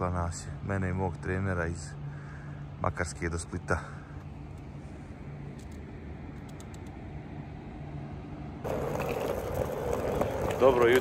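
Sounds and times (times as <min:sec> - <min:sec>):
low outdoor hum: 0:00.0 - 0:11.0.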